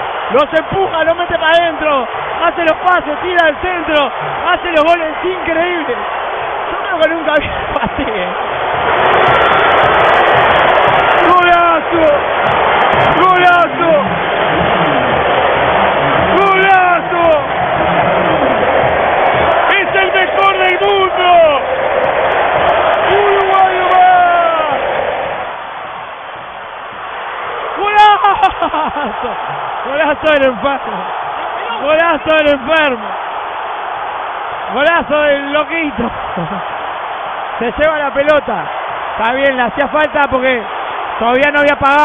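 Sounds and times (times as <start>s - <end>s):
stadium crowd cheering: 0.0s - 42.0s
voices shouting: 0.0s - 42.0s.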